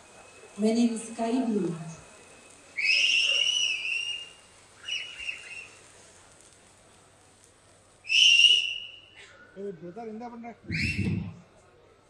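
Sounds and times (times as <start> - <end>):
shrill human whistles: 2.8 - 5.8, 8.0 - 9.6, 10.7 - 11.4.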